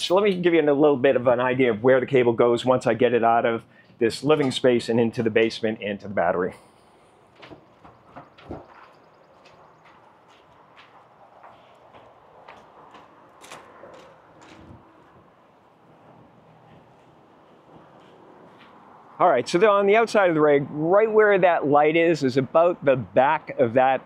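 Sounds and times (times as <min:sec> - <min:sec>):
faint outdoor background noise: 0:00.0 - 0:24.0.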